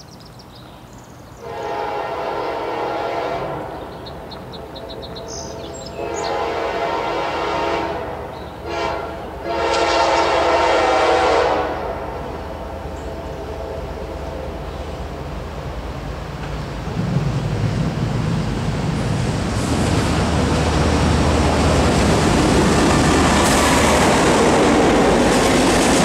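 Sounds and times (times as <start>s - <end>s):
birds chirping: 0.0s - 1.5s, 3.6s - 6.6s, 8.3s - 9.4s
train rumbling: 1.1s - 26.0s
locomotive air horn blasts: 1.4s - 3.8s, 4.8s - 14.7s.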